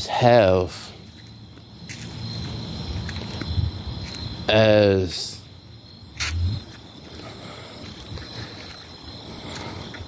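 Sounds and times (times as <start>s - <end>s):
faint insect chirr: 0.0s - 10.0s.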